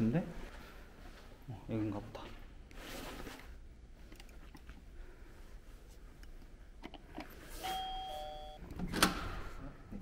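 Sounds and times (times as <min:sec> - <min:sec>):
two-note electronic doorbell chime: 0:07.7 - 0:08.6.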